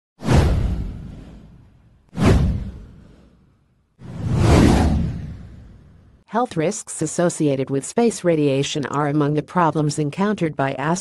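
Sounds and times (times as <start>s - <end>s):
whoosh sound effects: 4.0s - 6.0s.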